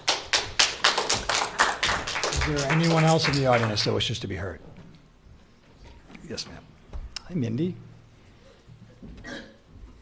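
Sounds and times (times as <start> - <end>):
sparse audience clapping: 0.0 - 4.2.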